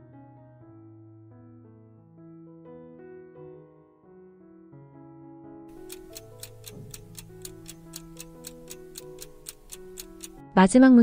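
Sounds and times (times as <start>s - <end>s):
soft keyboard music: 0.0s - 11.0s
clock ticking: 5.7s - 10.5s.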